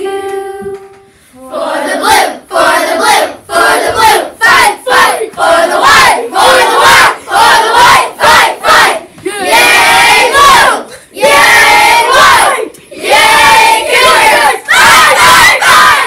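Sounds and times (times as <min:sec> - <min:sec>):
children chanting in unison: 0:01.4 - 0:16.0.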